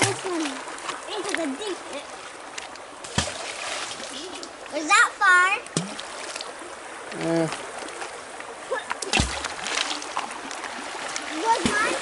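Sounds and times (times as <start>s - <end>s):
creek running over stones: 0.0s - 12.0s
splash in water: 3.0s - 4.2s, 9.0s - 12.0s.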